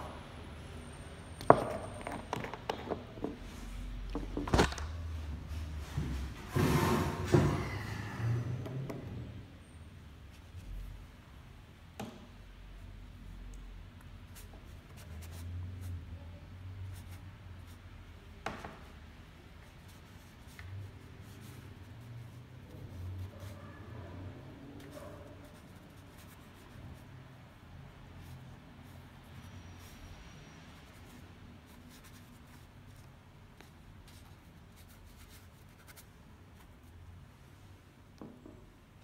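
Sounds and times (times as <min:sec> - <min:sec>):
brush strokes on paper: 0:19.6 - 0:27.3.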